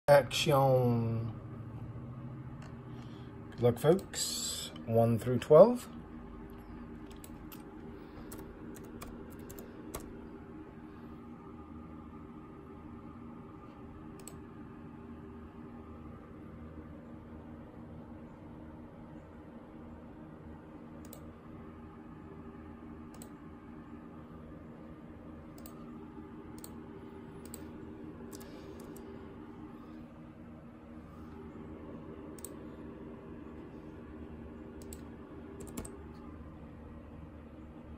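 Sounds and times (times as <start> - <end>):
steady low hum: 0.0 - 37.9
computer keyboard typing: 7.0 - 10.3, 25.5 - 25.9, 34.8 - 36.2
laptop clicks: 34.8 - 36.0.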